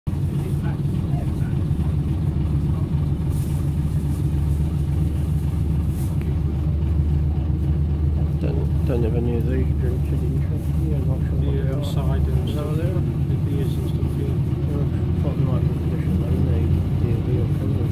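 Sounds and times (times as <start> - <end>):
bus diesel engine droning: 0.1 - 17.9.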